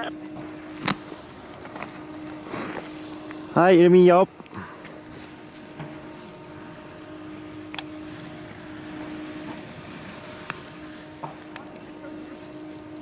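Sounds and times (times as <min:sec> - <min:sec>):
faint outdoor noise: 0:00.0 - 0:13.0
low machine hum: 0:00.0 - 0:13.0.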